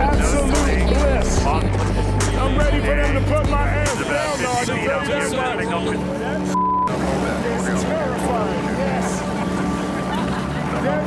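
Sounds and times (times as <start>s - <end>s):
low mechanical drone: 0.0s - 11.0s
censor bleep: 6.5s - 6.9s.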